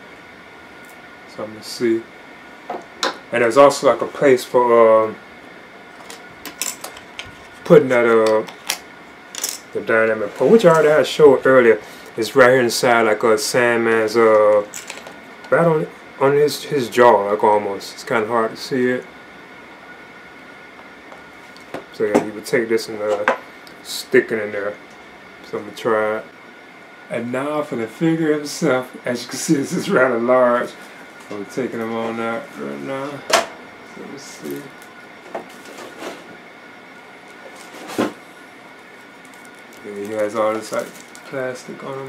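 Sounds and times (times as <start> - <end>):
faint high-pitched whine: 0.0 - 42.0.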